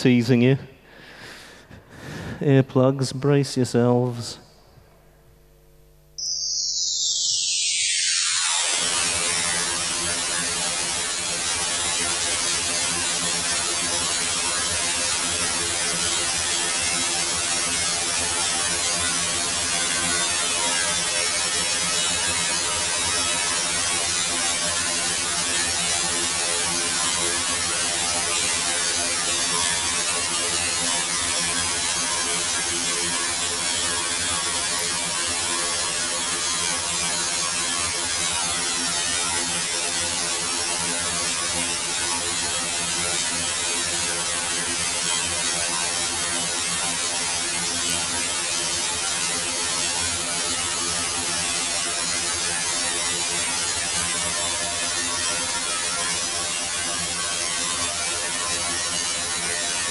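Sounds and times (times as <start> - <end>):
harsh noise music: 6.2 - 10.9.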